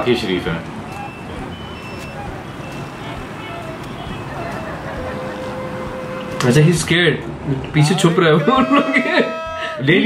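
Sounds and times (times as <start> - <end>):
street traffic hum: 0.0 - 10.0
short high-pitched beeps: 0.9 - 4.3.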